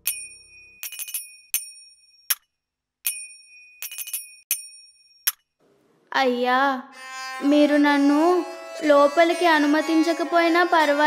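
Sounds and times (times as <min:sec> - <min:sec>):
small metal bell ringing: 0:00.0 - 0:02.4, 0:03.1 - 0:05.4.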